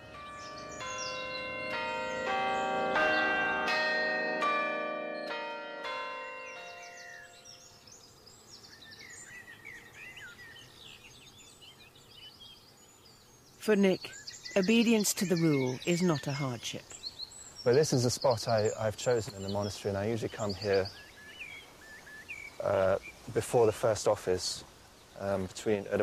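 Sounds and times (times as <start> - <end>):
church bells ringing: 0.0 - 7.8
birds singing: 0.0 - 26.0.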